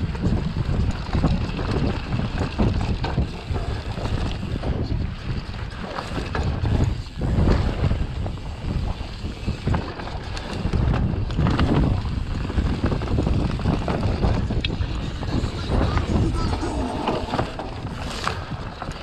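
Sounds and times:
bike rattling over bumps: 0.0 - 19.0
tyres rumbling on dirt: 0.0 - 19.0
wind buffeting microphone: 0.0 - 19.0.

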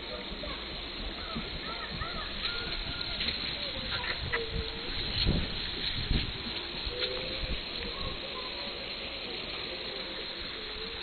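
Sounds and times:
animals rustling through dry leaves: 1.3 - 11.0.

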